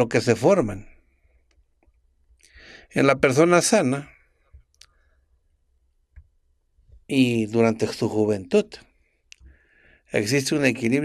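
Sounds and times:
man speaking close-miked: 0.0s - 0.9s, 2.8s - 4.1s, 7.1s - 8.8s, 10.1s - 11.0s
mouth click: 9.3s - 9.5s.

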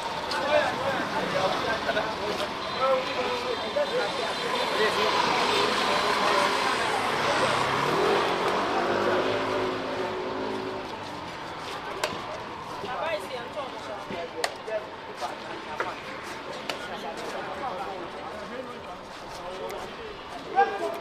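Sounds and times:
people's voices: 0.0s - 21.0s
car driving past: 4.8s - 11.3s.

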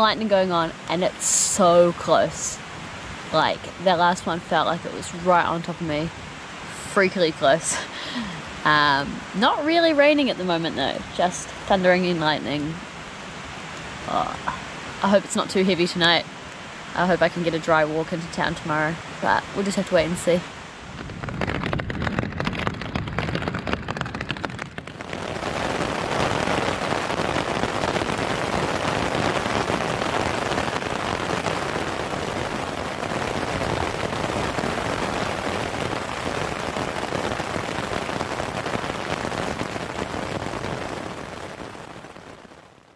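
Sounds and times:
rain drumming on tent fabric: 0.0s - 42.9s.

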